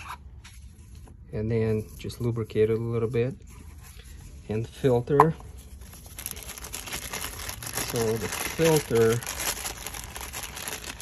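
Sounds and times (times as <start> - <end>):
plastic bag crinkling: 5.8 - 11.0.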